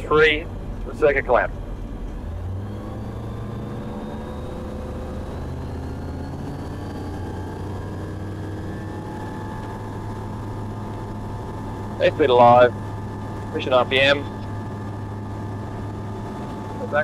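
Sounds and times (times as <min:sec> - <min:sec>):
propeller aircraft engine droning: 0:00.0 - 0:17.0.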